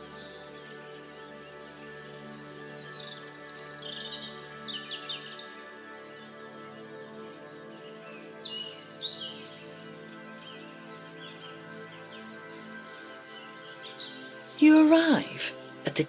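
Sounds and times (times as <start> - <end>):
ambient music pad: 0.0 - 16.0.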